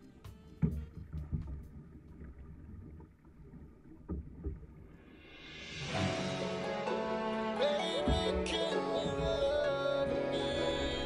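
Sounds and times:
music: 0:00.0 - 0:02.4, 0:05.2 - 0:11.0
low rumble of water and wind: 0:00.0 - 0:06.4, 0:07.1 - 0:11.0
paddle stroke thumps: 0:00.5 - 0:02.8, 0:07.9 - 0:10.6.

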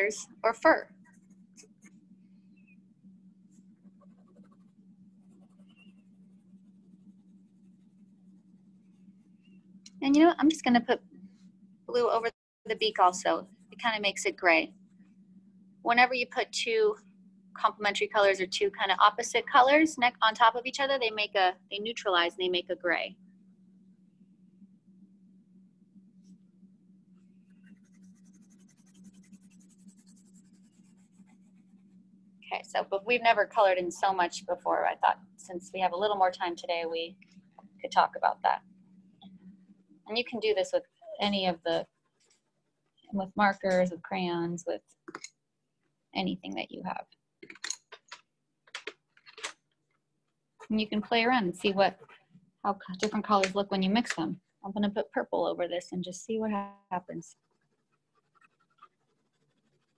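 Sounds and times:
low steady hum: 0:00.0 - 0:45.5, 0:46.1 - 0:49.6, 0:50.6 - 0:57.4
colored pencil scratching paper: 0:01.0 - 0:02.0, 0:03.5 - 0:09.6, 0:27.4 - 0:32.0, 0:57.3 - 0:59.9.

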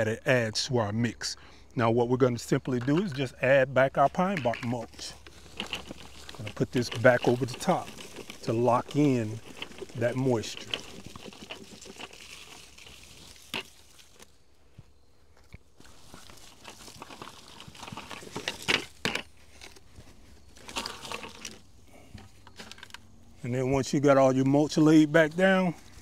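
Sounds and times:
bark chips crackling and rustling: 0:02.3 - 0:14.4, 0:15.4 - 0:23.2.

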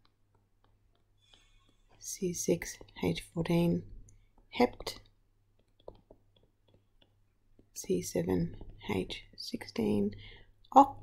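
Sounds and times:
stylus tapping on screen: 0:00.0 - 0:09.5
person speaking: 0:01.9 - 0:05.1, 0:07.6 - 0:11.0.

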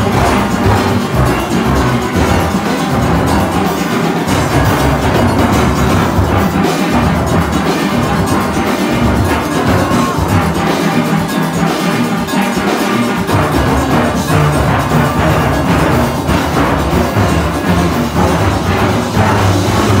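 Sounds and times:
steel band playing: 0:00.0 - 0:20.0.

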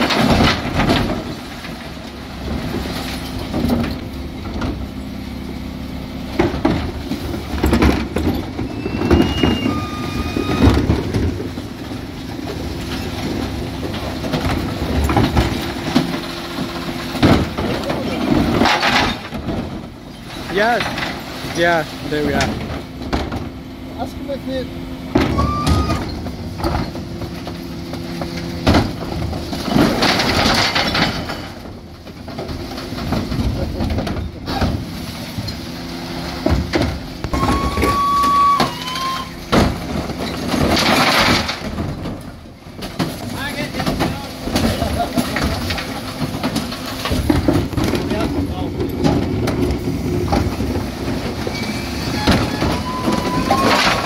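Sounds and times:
bin lift raising bins: 0:00.0 - 0:54.0
refuse lorry engine running: 0:00.0 - 0:54.0.

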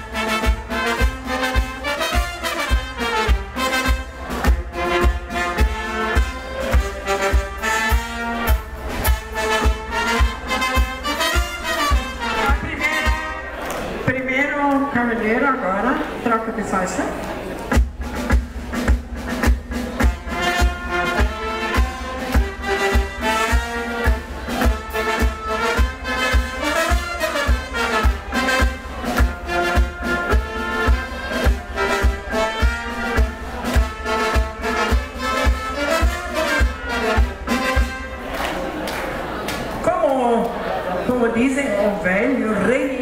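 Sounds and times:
brass band playing dance music: 0:00.0 - 0:14.0, 0:17.7 - 0:39.3.

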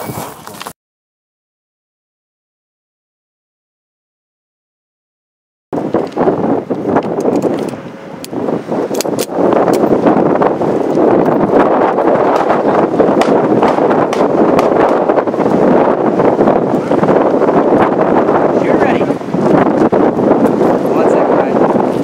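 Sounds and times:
wind buffeting microphone: 0:05.7 - 0:22.0.

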